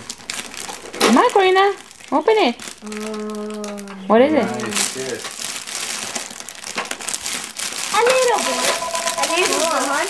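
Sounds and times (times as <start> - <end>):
gift wrap crinkling and rustling: 0.0 - 10.0
person speaking: 8.0 - 10.0.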